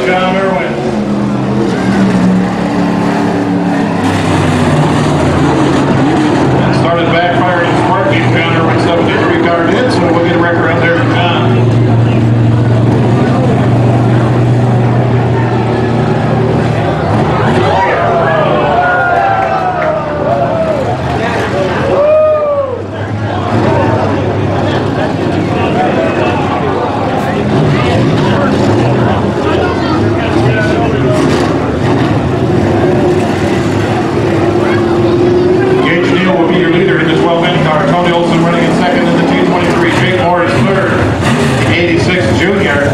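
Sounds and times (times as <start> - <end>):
vehicle engine running: 0.0 - 42.9
voices chattering: 0.0 - 42.9.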